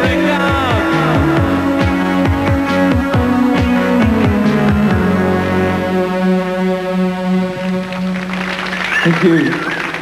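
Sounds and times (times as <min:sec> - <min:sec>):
sustained synthesizer chord: 0:00.5 - 0:08.9.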